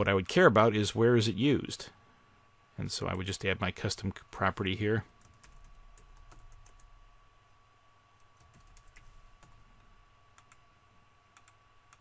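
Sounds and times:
faint electrical hum: 0.0 - 12.0
computer keyboard typing: 5.2 - 6.9, 8.2 - 9.6, 10.4 - 10.6, 11.4 - 12.0.

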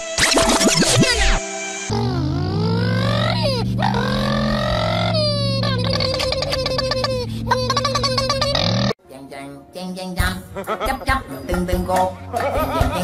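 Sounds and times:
comic wailing voice: 1.9 - 8.9.

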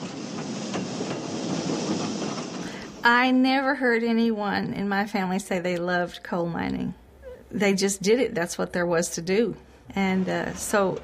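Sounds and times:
rail car rolling on track: 0.0 - 3.8.

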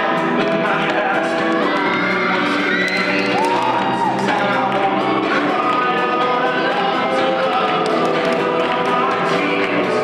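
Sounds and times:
vocal pop song: 0.0 - 10.0.

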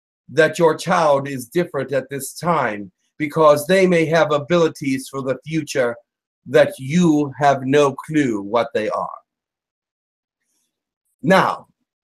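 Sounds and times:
man speaking: 0.3 - 9.2, 11.2 - 11.7.

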